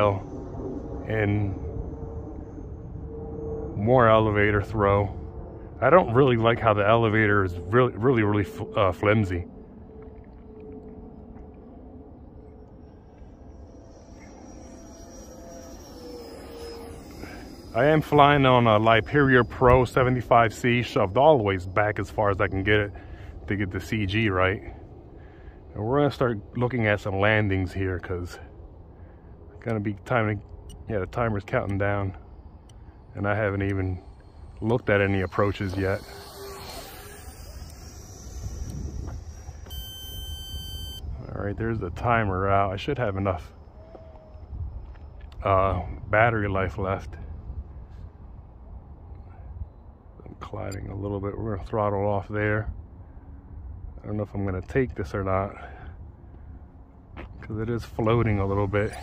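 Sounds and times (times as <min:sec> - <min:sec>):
distant electric ducted fan whine: 0:00.0 - 0:59.0
low steady rumble: 0:00.0 - 0:59.0
flight timer alarm beep: 0:12.4 - 0:25.0, 0:30.4 - 0:41.2, 0:58.0 - 0:59.0.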